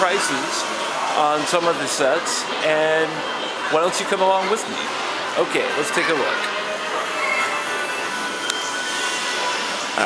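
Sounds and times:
indoor shop ambience: 0.0s - 10.0s.

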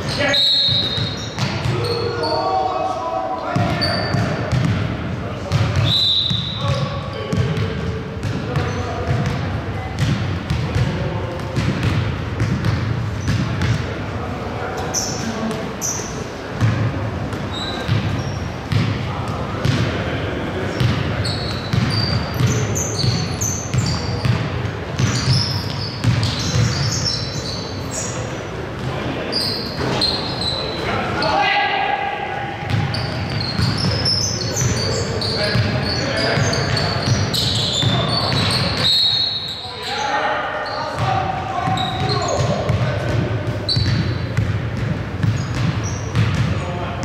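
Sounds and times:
players calling out: 0.0s - 4.6s
sneakers squeaking: 0.0s - 31.5s, 32.2s - 47.0s
basketball bouncing: 0.7s - 1.8s, 3.6s - 4.9s, 5.5s - 5.9s, 6.7s - 13.8s, 16.6s - 20.0s, 20.7s - 26.9s, 32.6s - 34.8s, 41.0s - 46.6s.

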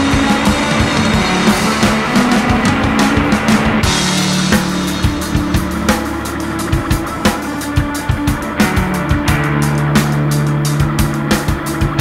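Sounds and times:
distorted droning bass: 0.0s - 12.0s
drum hits: 0.0s - 12.0s.

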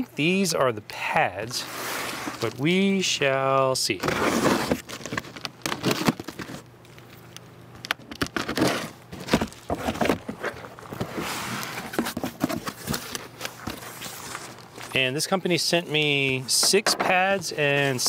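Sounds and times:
packing material rustling: 4.0s - 7.2s, 8.0s - 15.0s.

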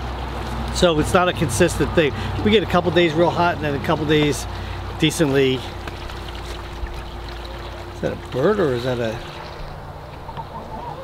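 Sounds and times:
faint steady hum: 1.7s - 11.0s.

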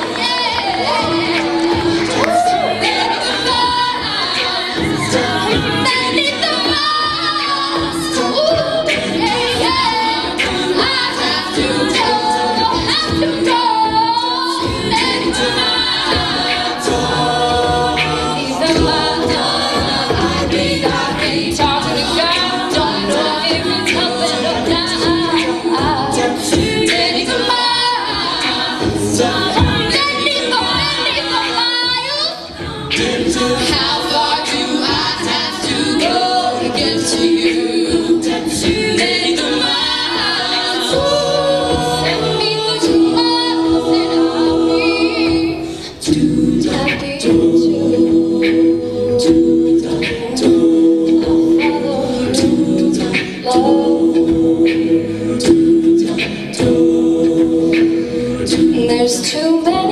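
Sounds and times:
backing vocal harmonies: 0.0s - 59.9s
vocal percussion beat: 0.0s - 59.9s
woman singing lead: 0.0s - 59.9s.

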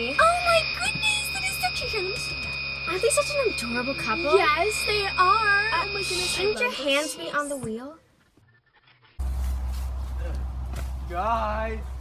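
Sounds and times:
low rumble with hiss: 9.2s - 12.0s.

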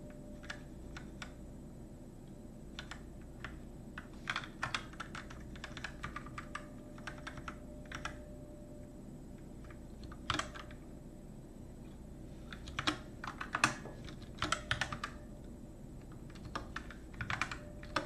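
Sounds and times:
typing on computer keyboard: 2.8s - 8.2s, 9.6s - 10.8s, 12.5s - 15.2s, 16.0s - 18.0s.

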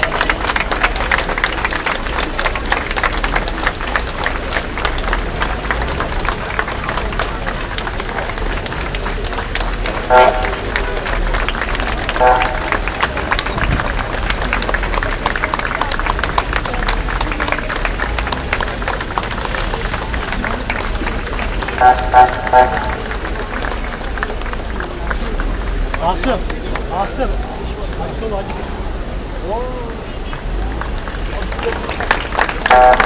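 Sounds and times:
crowd clapping: 0.0s - 28.5s, 30.0s - 33.0s
voices in crowd: 0.0s - 33.0s
short car horn beeps: 32.7s - 33.0s.

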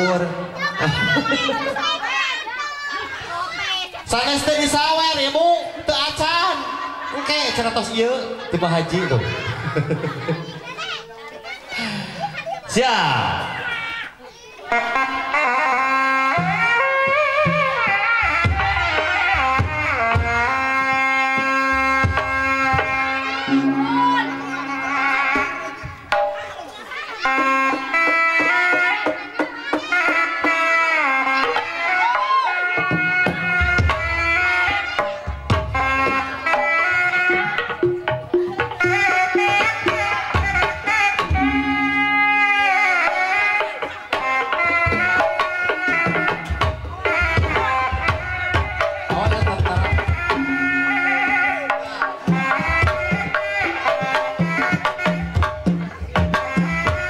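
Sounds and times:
reedy shawm melody: 14.6s - 57.0s
barrel drums beating: 16.4s - 30.6s, 37.2s - 57.0s
sharp drum stroke: 21.4s - 26.7s.

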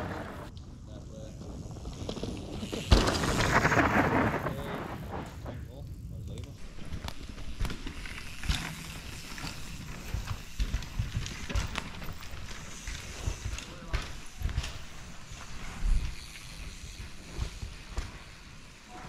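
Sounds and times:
bike rattling over roots: 0.0s - 0.5s, 1.3s - 5.3s, 6.6s - 19.0s
bike tyres rushing over dirt: 0.0s - 19.0s
mountain bike landing thump: 2.8s - 5.3s.

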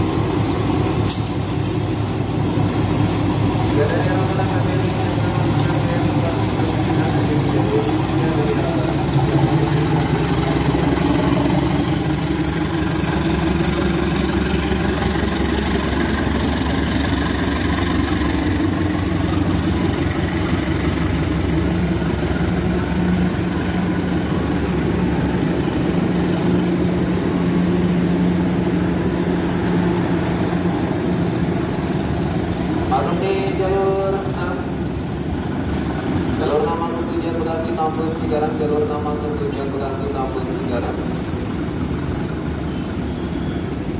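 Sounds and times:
diesel locomotive engine drone: 0.0s - 43.9s.

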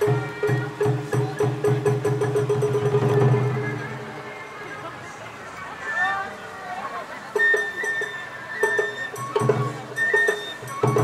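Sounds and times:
taiko drums rolling: 0.0s - 4.6s, 7.3s - 11.0s.

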